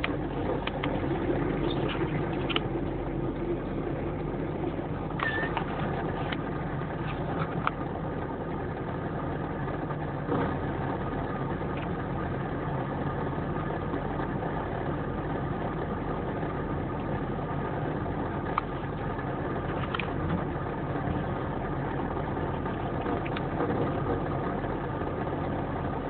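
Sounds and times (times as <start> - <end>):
heavy truck engine running: 0.0 - 26.0.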